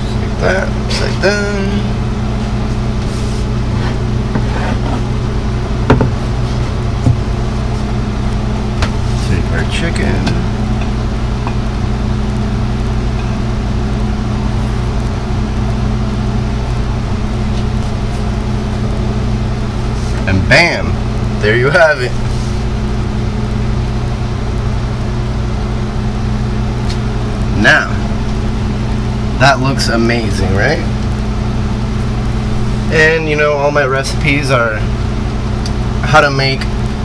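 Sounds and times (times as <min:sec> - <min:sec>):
low machine hum: 0:00.0 - 0:37.0.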